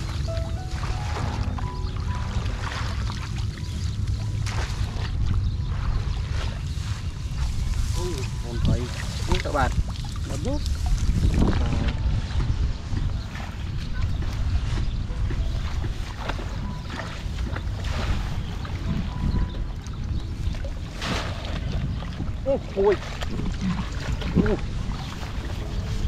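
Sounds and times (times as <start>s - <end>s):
wading through shallow water: 0.0s - 26.0s
wind buffeting microphone: 0.0s - 26.0s.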